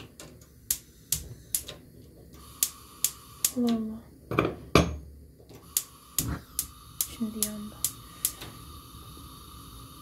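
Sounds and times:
spark lighter clicking: 0.6s - 3.9s, 5.6s - 9.7s.

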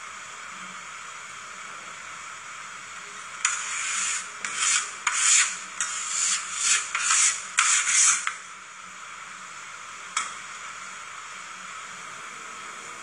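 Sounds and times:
steady hiss: 0.0s - 13.0s.

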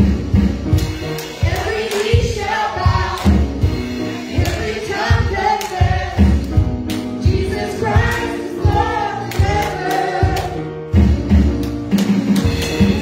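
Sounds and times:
music with steady beat: 0.0s - 13.0s.

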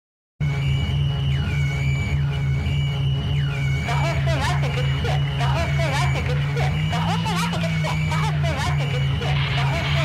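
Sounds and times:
dark electronic music: 0.4s - 10.0s.

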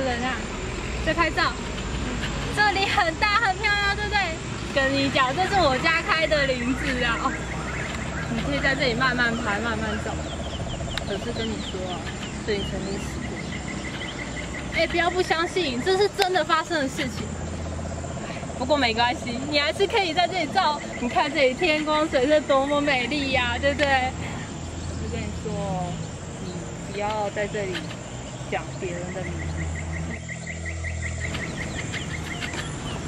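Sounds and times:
crickets chirping: 0.0s - 33.0s.

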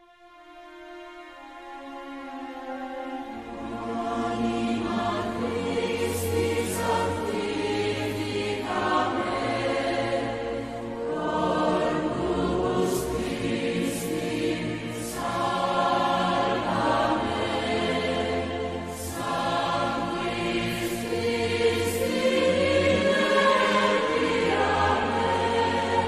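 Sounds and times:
choir singing a hymn: 0.7s - 26.0s.

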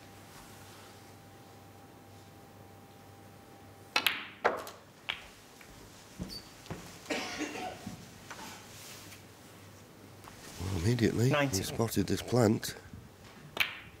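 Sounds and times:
snooker ball clicks: 3.9s - 5.3s, 13.6s - 13.9s.

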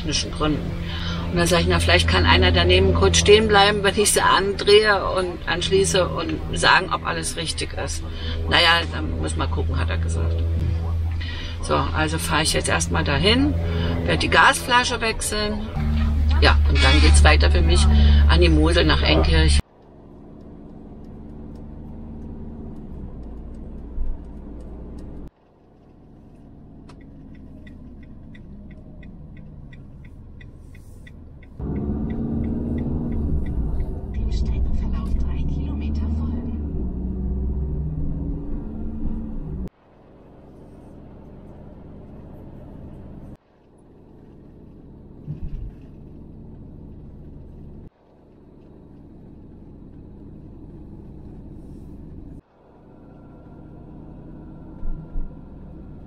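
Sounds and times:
road and engine rumble: 0.0s - 56.0s
even ticks: 19.7s - 34.9s.

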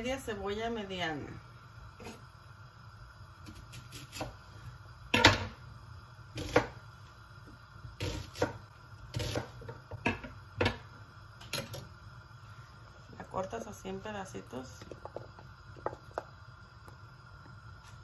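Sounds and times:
knife chopping on wooden board: 6.4s - 6.8s, 8.0s - 10.2s.

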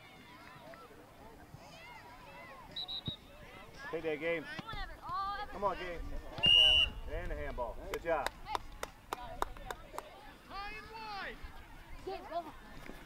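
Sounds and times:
referee whistle blast: 2.7s - 3.2s, 6.4s - 7.0s.

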